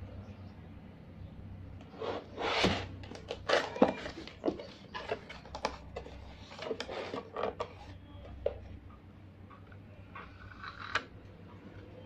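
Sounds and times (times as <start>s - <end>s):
cardboard scraping and rubbing: 1.9s - 5.3s.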